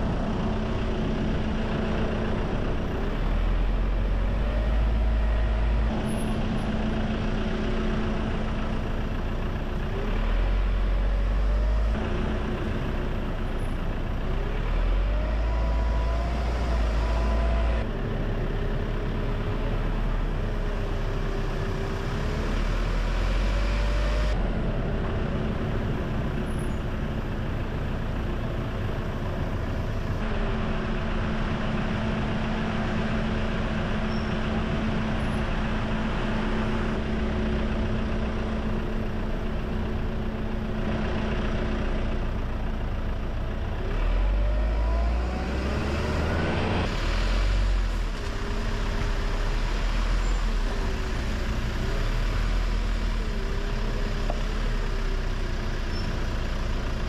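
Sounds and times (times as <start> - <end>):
car engine: 0.0 - 57.0
road noise: 0.0 - 57.0.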